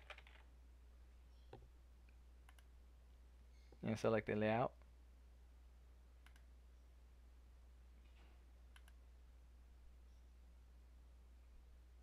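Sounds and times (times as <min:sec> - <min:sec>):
low steady hum: 0:00.0 - 0:12.0
mouse clicks: 0:01.4 - 0:02.7, 0:06.2 - 0:06.5, 0:08.7 - 0:09.0.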